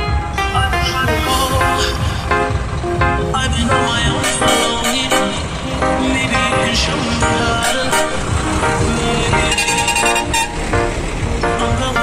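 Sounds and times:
background music: 0.0 - 12.0
trucks driving past: 0.0 - 12.0
truck horn: 3.6 - 11.1.

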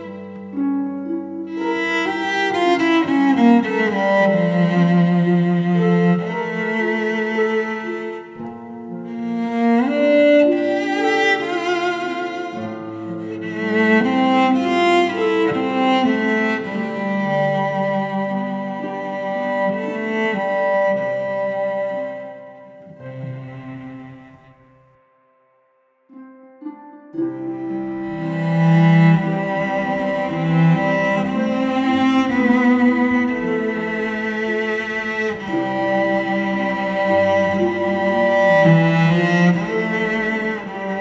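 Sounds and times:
cello and string ensemble ballad: 0.0 - 25.0, 26.1 - 41.0.

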